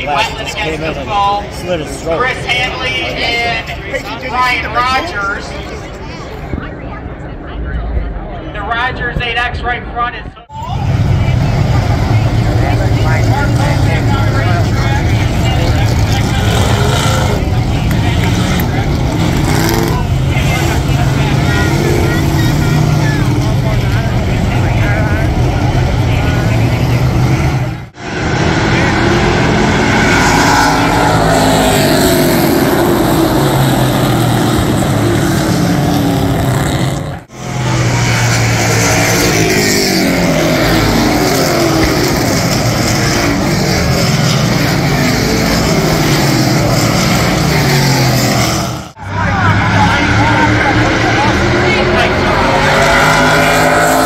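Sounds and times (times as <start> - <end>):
race car engines passing: 10.5 - 54.0.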